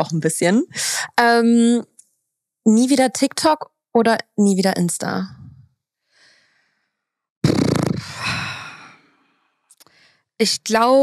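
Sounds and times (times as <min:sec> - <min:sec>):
faint breath: 0:06.0 - 0:07.1, 0:08.0 - 0:10.3
woman sighing heavily: 0:08.0 - 0:09.0.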